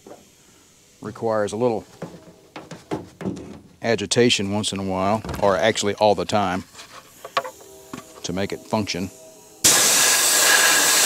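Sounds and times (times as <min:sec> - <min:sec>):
soda blaster knocks and rattles: 0:02.0 - 0:03.8.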